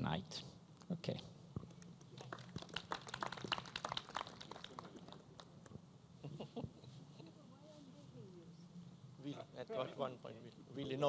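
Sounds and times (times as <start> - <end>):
small group applauding: 1.7 - 5.8.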